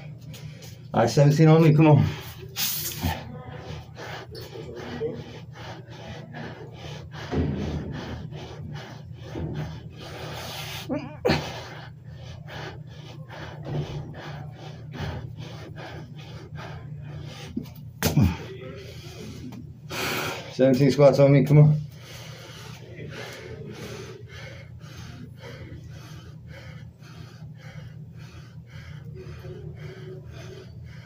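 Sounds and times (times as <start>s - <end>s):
steady low hum: 0.0s - 31.0s
man breathing hard and gasping: 1.8s - 20.6s, 21.8s - 31.0s.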